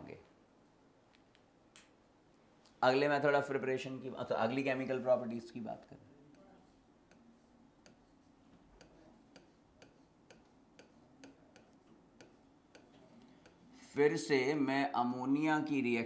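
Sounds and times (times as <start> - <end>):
faint ticking: 5.8 - 13.8.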